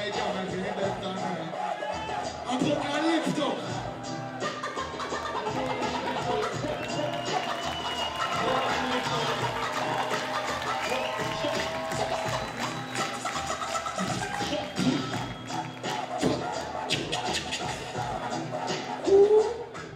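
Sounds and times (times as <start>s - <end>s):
hip hop beat over pa: 0.0s - 19.9s.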